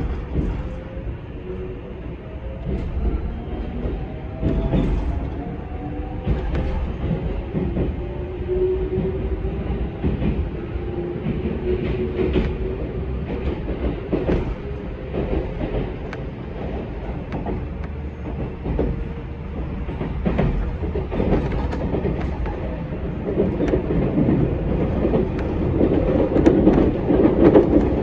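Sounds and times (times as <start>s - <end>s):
wheels clacking over rail joints: 0.0s - 1.0s, 2.6s - 8.2s, 11.2s - 28.0s
low train rumble: 0.0s - 28.0s.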